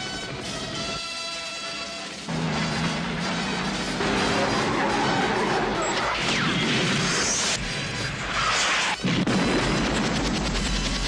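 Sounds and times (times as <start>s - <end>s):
film trailer music: 0.0s - 11.0s.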